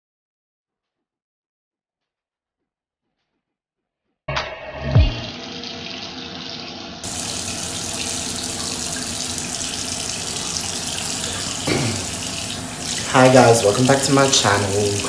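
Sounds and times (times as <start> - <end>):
sink tap running water: 5.0 - 15.0.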